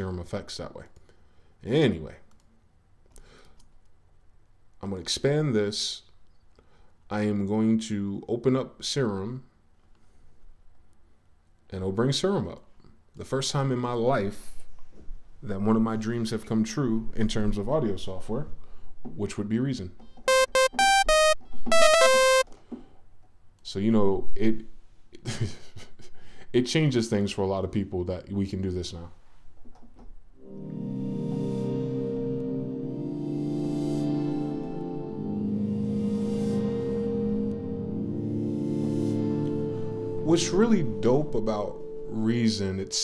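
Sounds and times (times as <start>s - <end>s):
bright sawtooth synth notes: 20.3s - 22.4s.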